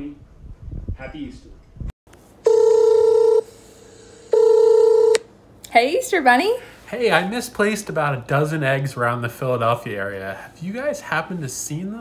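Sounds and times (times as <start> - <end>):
phone ringing: 2.4 - 3.5, 4.3 - 5.2.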